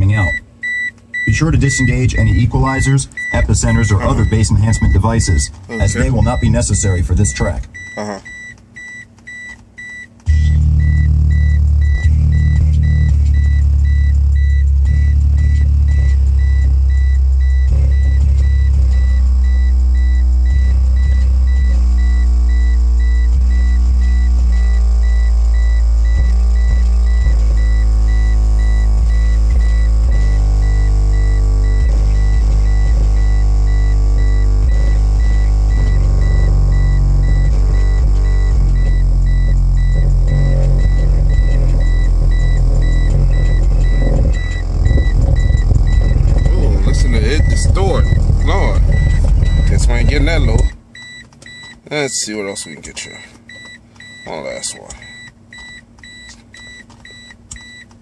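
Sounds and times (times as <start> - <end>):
loud deep bass: 1.2 - 7.9, 10.3 - 50.8.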